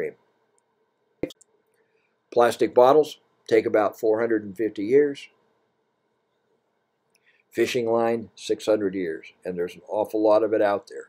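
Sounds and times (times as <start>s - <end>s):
person speaking: 2.3s - 5.4s, 7.5s - 11.0s.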